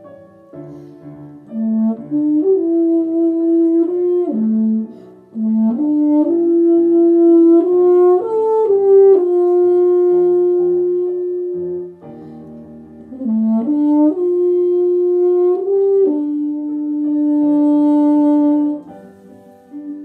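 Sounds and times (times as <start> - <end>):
quiet low accompaniment: 0.0 - 20.0
euphonium playing slow melody: 0.5 - 20.0.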